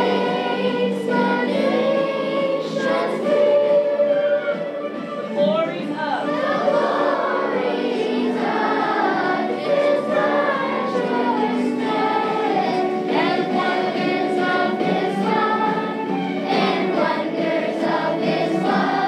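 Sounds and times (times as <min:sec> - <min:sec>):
children's choir singing: 0:00.0 - 0:05.4, 0:06.2 - 0:19.0.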